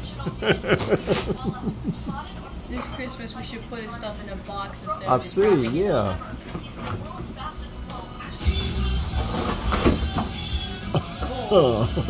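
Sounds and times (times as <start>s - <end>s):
television music and talk: 0.0s - 12.0s
cardboard scraping and tearing: 9.1s - 10.1s.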